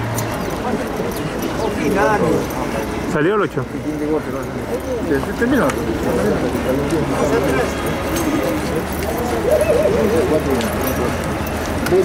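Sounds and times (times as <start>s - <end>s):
men talking: 0.4s - 12.0s.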